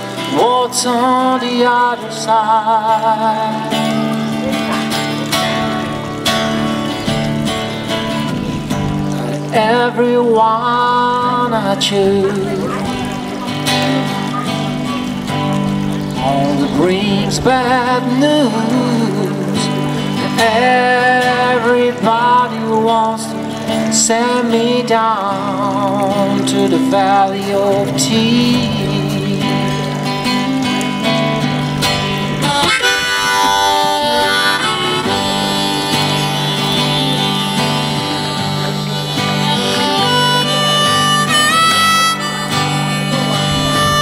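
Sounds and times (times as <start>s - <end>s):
acoustic guitar strumming: 0.0s - 44.0s
person singing: 0.1s - 4.7s, 9.4s - 14.0s, 16.2s - 30.6s
harmonica long notes: 32.4s - 44.0s.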